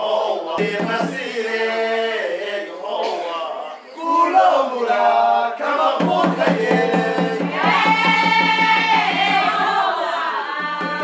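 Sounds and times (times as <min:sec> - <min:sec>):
group of voices chanting: 0:00.0 - 0:11.0.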